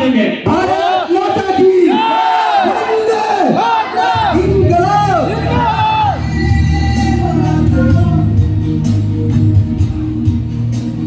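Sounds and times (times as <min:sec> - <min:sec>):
men shouting together: 0:00.5 - 0:06.4
deep low music: 0:04.2 - 0:11.0.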